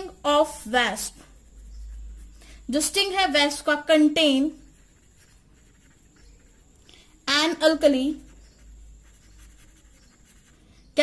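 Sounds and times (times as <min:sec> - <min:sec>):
pen scratching on paper: 0:00.0 - 0:06.8, 0:07.4 - 0:10.6.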